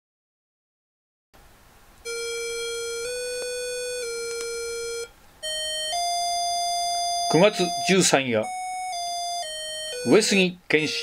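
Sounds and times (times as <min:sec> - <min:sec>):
steady electronic instrument tones: 0:02.0 - 0:11.0.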